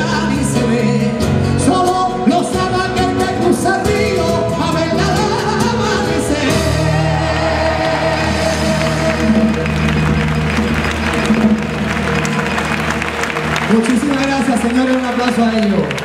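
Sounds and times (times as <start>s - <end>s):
man singing into microphone: 0.0s - 9.6s
acoustic guitar: 0.0s - 13.9s.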